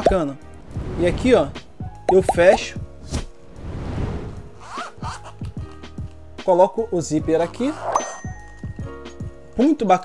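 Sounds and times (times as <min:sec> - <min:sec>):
zipper pulled shut: 0:04.6 - 0:05.4, 0:07.6 - 0:08.0.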